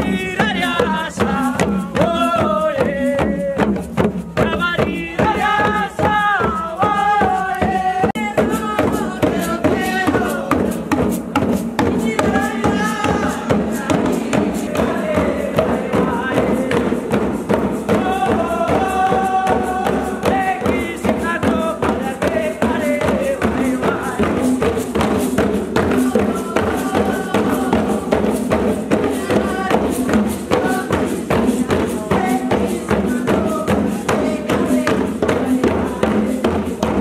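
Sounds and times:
hand drums beaten: 0.0 - 37.0.

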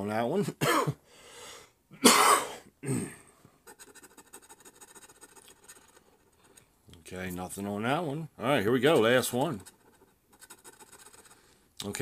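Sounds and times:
person coughing: 0.6 - 1.0, 2.0 - 3.4
scratching lottery ticket: 3.7 - 6.7, 9.1 - 11.5.

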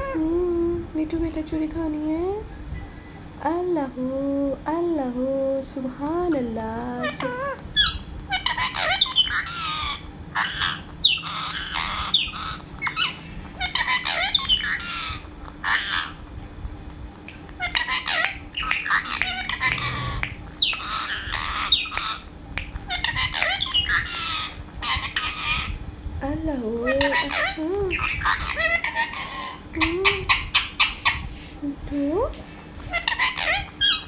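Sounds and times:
parakeet chattering and squawking: 6.1 - 16.3, 17.2 - 25.8, 26.8 - 31.4, 32.4 - 34.0.

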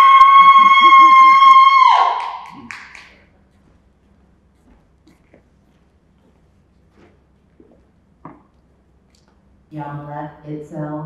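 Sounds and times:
person cheering woo: 0.0 - 3.1.

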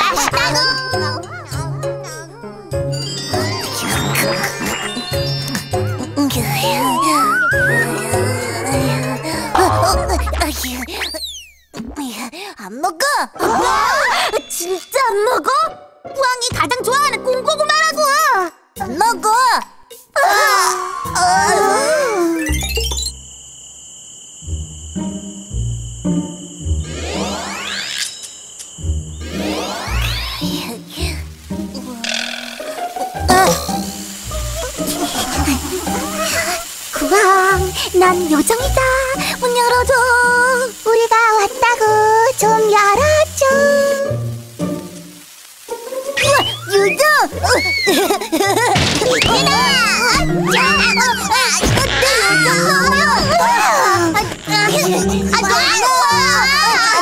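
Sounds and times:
background music: 0.0 - 10.6
cartoon squeals and cries: 0.0 - 11.5, 13.4 - 15.3, 20.2 - 22.6, 34.3 - 37.5, 46.2 - 57.0
crickets chirping: 0.0 - 11.5, 12.4 - 57.0.

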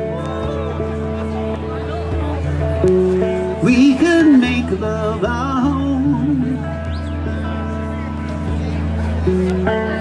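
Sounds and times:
electric guitar chords: 0.0 - 10.0
man singing: 3.5 - 7.0.

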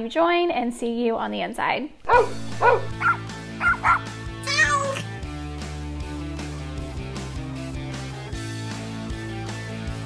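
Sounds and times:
dog barking: 2.1 - 4.1
music with steady bass: 2.1 - 10.0.

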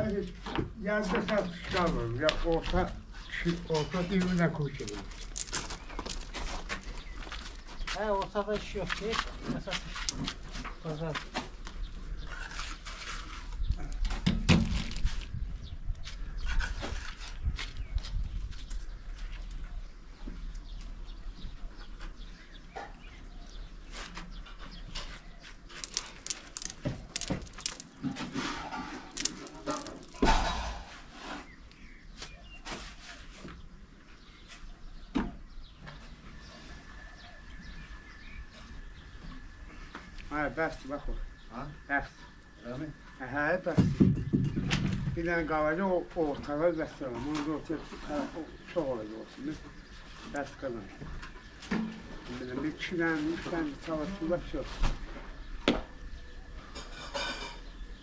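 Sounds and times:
trowel and blocks clicking and scraping: 25.7 - 30.3.

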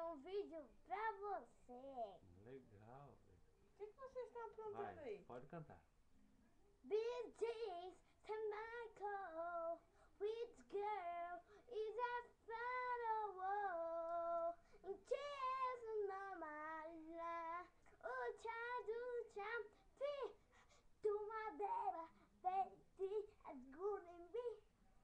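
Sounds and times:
child singing: 0.0 - 2.2, 6.9 - 24.6.

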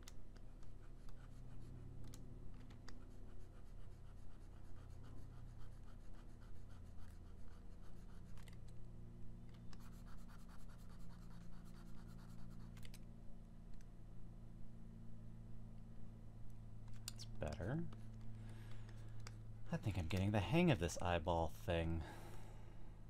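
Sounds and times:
steady low hum: 0.0 - 23.0
stylus scratching on tablet: 0.1 - 8.7, 9.6 - 13.0.

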